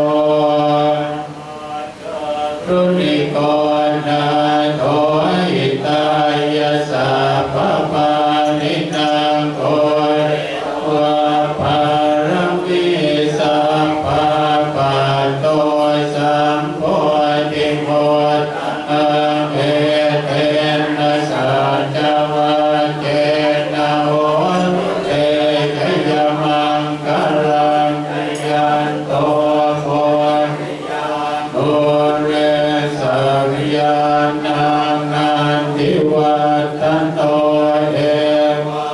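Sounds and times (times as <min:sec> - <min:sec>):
monks chanting in unison: 0:00.0 - 0:38.9.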